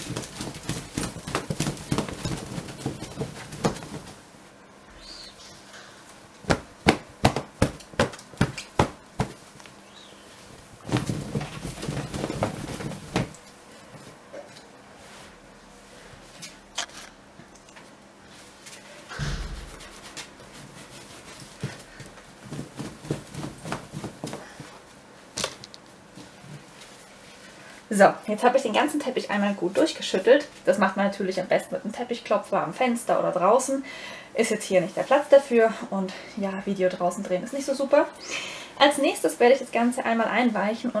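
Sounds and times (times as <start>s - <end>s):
rug rustling: 0.0s - 14.3s, 18.3s - 27.8s
rug flapping snaps: 6.1s - 9.8s
low thud: 19.1s - 20.0s.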